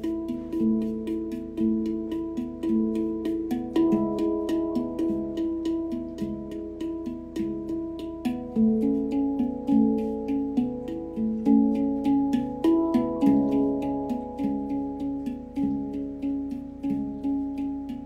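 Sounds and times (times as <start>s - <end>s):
handpan melody: 0.0s - 18.0s.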